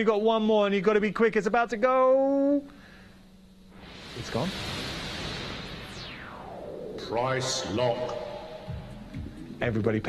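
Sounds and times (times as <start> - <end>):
synthesized whoosh sweeping down: 3.7 - 9.6.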